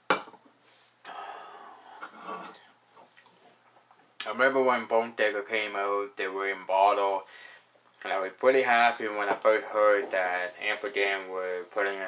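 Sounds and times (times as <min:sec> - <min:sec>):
glass clinking on table: 0:00.1 - 0:00.4.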